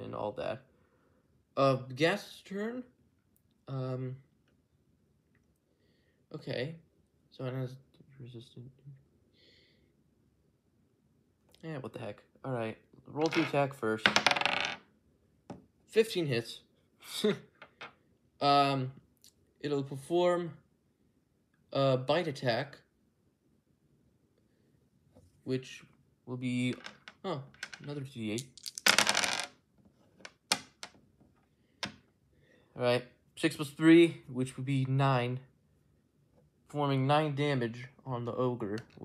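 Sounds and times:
dice clicking on wooden table: 0:13.2 - 0:14.8, 0:26.7 - 0:29.6, 0:30.2 - 0:31.0.

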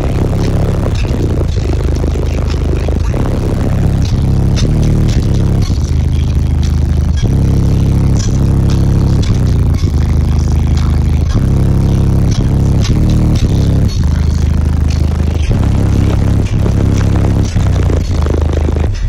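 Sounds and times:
bass-heavy music with beat: 0:00.0 - 0:19.0.

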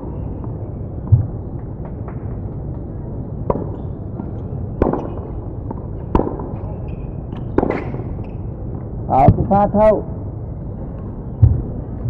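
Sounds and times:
tennis racquets hitting ball: 0:03.4 - 0:08.4
low background rumble: 0:07.1 - 0:12.0.

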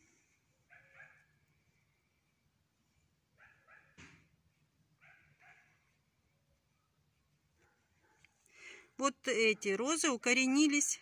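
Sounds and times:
faint dog barking: 0:00.6 - 0:01.4, 0:03.3 - 0:04.3, 0:05.0 - 0:06.0, 0:06.6 - 0:08.5.

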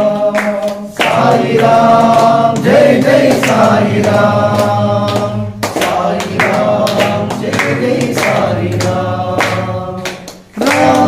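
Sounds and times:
hand clapping in time: 0:00.0 - 0:11.0
voices chanting: 0:00.0 - 0:11.0.

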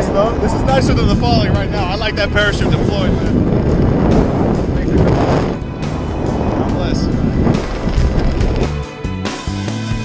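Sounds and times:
wind rushing over microphone: 0:00.0 - 0:09.1
background music: 0:00.0 - 0:10.0.

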